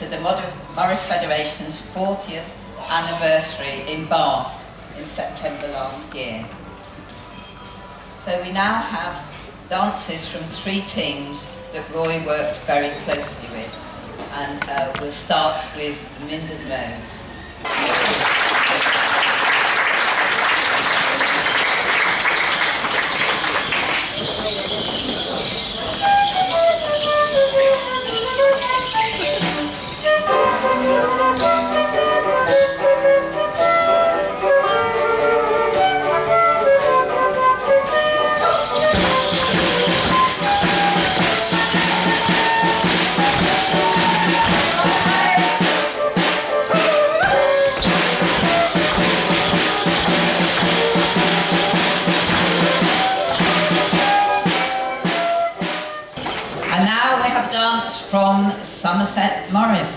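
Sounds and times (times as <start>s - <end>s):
folk dance tune: 18.4s - 58.1s
percussive beat: 38.5s - 55.9s.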